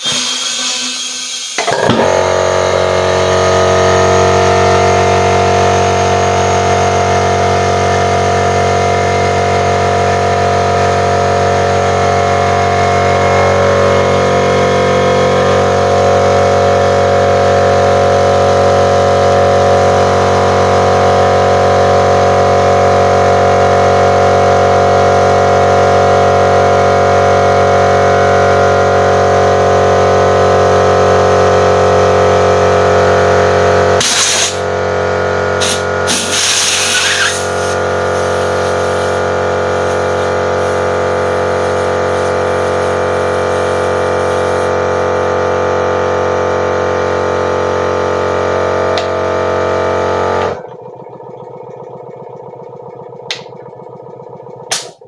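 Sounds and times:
air compressor humming: 0:00.0 - 0:55.0.

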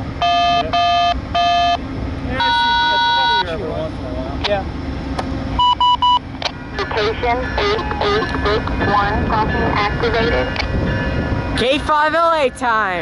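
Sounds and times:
locomotive air horn blasts: 0:02.4 - 0:03.4, 0:06.6 - 0:10.6.

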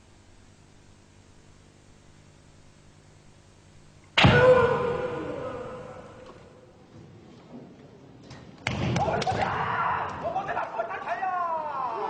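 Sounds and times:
shouted kiai: 0:04.2 - 0:06.2, 0:09.0 - 0:12.0
kendo strike impacts: 0:04.2 - 0:06.5.

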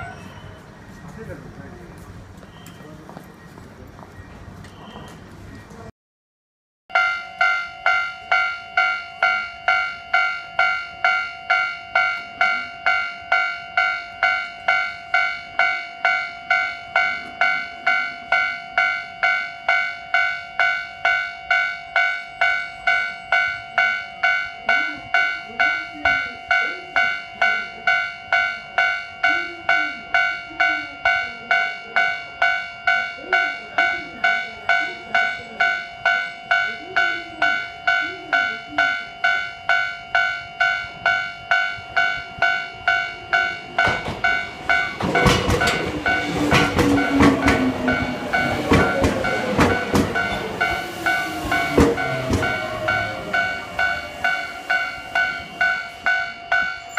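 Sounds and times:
level-crossing bell ringing: 0:06.9 - 0:56.9.

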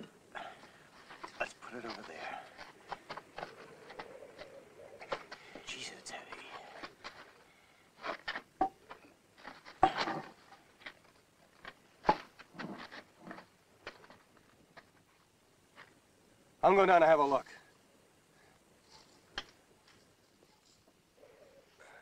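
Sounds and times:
breathy effort sounds: 0:00.0 - 0:01.2.

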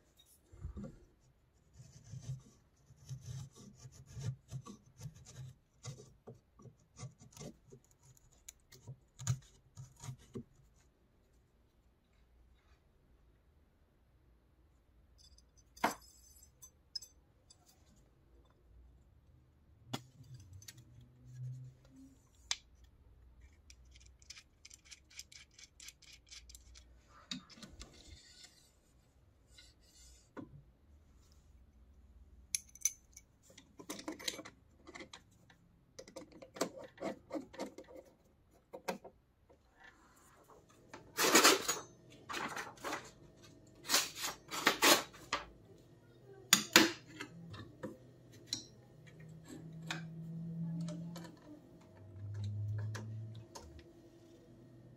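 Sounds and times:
metal parts and tools clinking: 0:15.2 - 0:17.9, 0:41.1 - 0:43.1.

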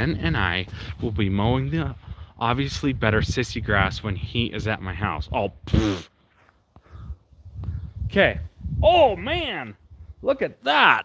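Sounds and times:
footsteps: 0:06.2 - 0:06.9.

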